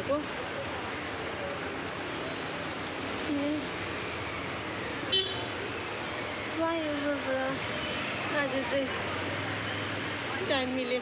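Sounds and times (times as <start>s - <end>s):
road traffic noise: 0.0s - 11.0s
car horn toot: 5.1s - 5.5s.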